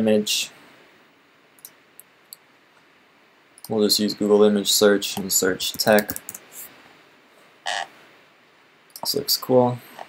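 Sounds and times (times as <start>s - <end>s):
croak-like sound: 7.6s - 7.9s.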